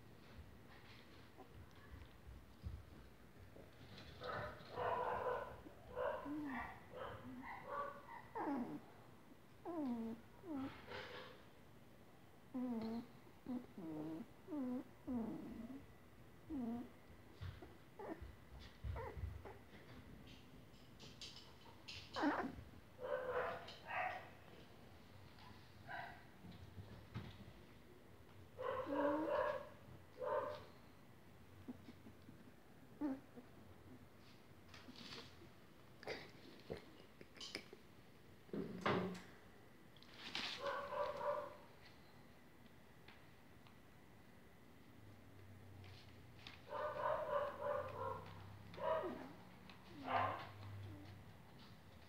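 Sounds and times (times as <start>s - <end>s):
puppy whining: 3.9s - 11.4s, 12.5s - 20.0s, 21.2s - 24.3s, 28.6s - 30.8s, 31.6s - 34.0s, 46.9s - 51.3s
puppy whimpering: 8.1s - 8.9s, 9.6s - 11.3s, 12.5s - 15.8s, 16.5s - 16.9s, 17.5s - 19.7s, 22.1s - 22.6s, 32.9s - 33.5s
puppy yelp: 18.8s - 19.6s, 22.1s - 24.3s, 28.6s - 30.6s.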